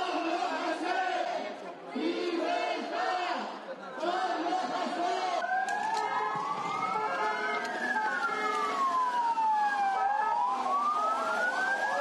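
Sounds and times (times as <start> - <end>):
police siren fast cycle: 5.4 - 12.0
police siren wailing slowly: 5.4 - 12.0.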